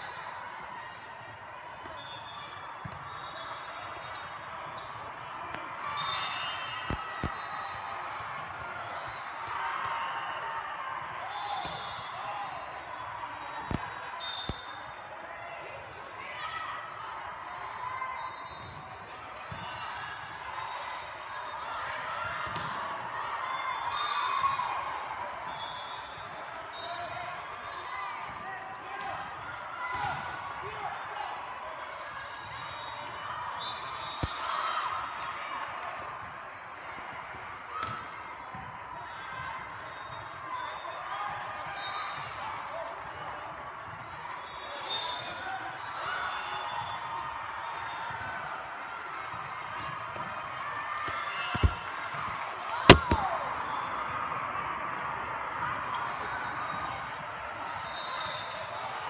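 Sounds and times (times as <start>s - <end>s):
volleyballs slapping: 51.6s - 51.9s, 52.9s - 53.3s.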